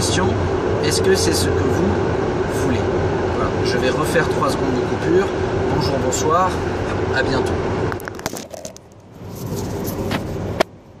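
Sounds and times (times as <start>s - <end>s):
low car cabin rumble: 0.0s - 11.0s
smartphone rubbing and rustling: 8.0s - 10.7s.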